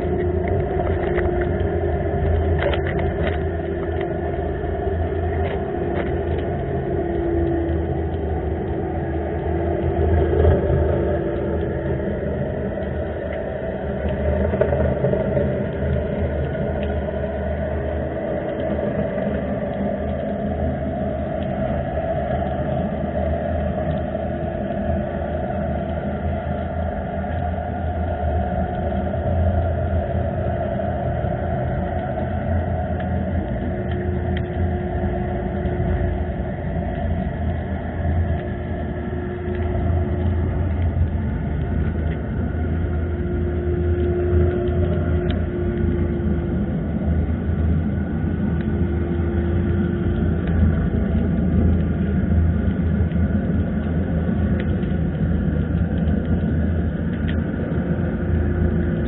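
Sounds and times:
faint clicks: 0:00.0 - 0:59.0
faint hum: 0:00.0 - 0:59.0
underwater low rumble: 0:00.0 - 0:59.0.

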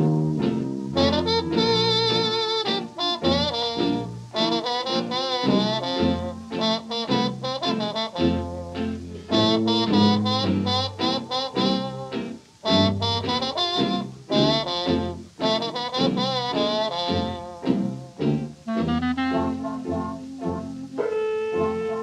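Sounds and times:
bass line: 0:00.0 - 0:02.4, 0:07.1 - 0:22.0
horns playing jazz phrases: 0:00.0 - 0:22.0.

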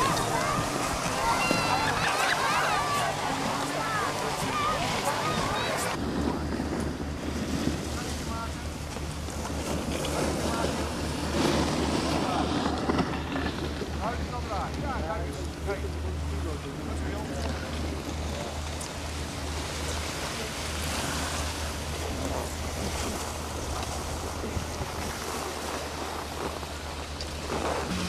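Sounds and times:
children's voices: 0:00.0 - 0:06.0
wind rumble on microphone: 0:03.0 - 0:15.8, 0:16.7 - 0:28.0.

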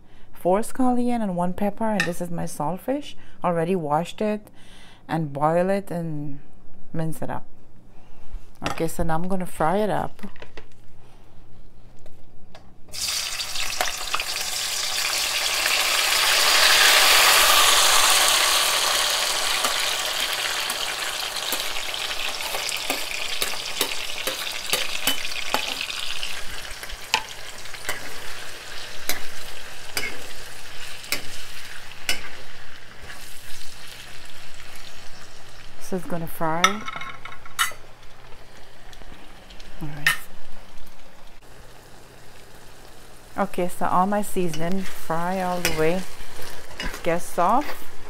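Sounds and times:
vegetables sizzling in hot oil: 0:12.9 - 0:35.9, 0:37.8 - 0:48.0.

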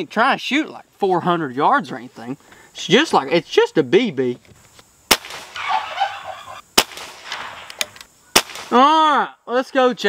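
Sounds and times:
air rifle shot crack: 0:05.1 - 0:05.7, 0:06.8 - 0:08.8.

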